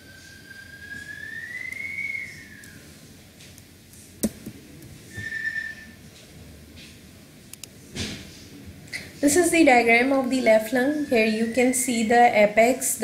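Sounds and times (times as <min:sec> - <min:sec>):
thin whistle-like tone: 0:00.0 - 0:03.0, 0:05.1 - 0:06.0, 0:10.7 - 0:12.1.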